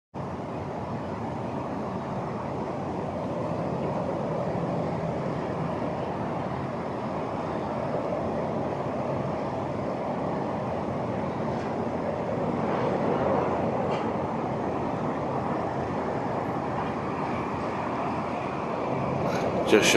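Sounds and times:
distant city traffic hum: 0:00.2 - 0:19.9.

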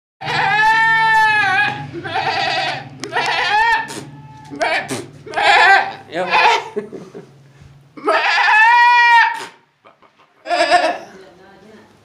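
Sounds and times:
man imitating goat bleats: 0:00.2 - 0:06.8, 0:08.0 - 0:09.6, 0:10.4 - 0:11.1.

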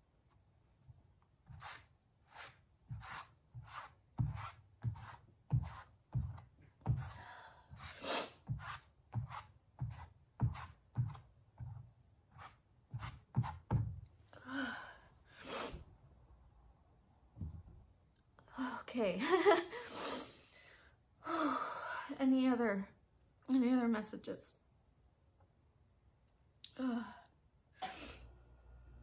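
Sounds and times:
hand smearing paint on canvas: 0:01.4 - 0:07.2, 0:07.8 - 0:13.9.

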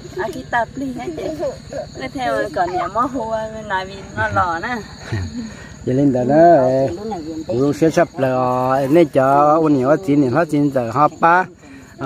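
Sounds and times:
high-pitched insect drone: 0:00.0 - 0:12.0
people talking: 0:00.0 - 0:12.0.

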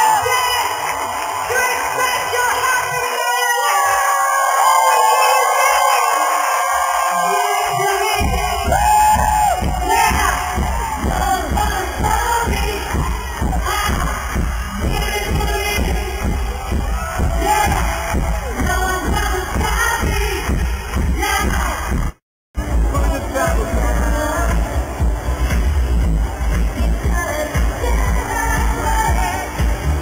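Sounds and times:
crowd cheering: 0:00.0 - 0:30.0
live pop music over pa: 0:07.2 - 0:30.0
heavy bass beat: 0:08.0 - 0:30.0.

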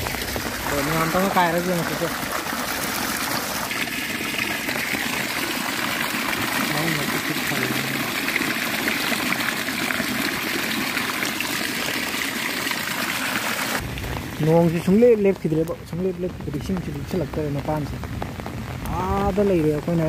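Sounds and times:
water pouring: 0:00.0 - 0:18.3.

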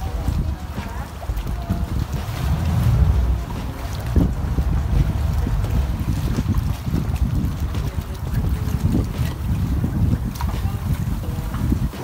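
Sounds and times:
boat motor rumbling: 0:00.0 - 0:12.0
wind buffeting microphone: 0:00.0 - 0:12.0.

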